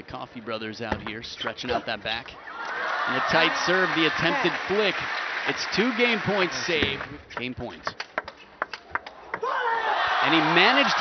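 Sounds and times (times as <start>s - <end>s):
crowd noise: 0.2s - 7.8s, 9.0s - 11.0s.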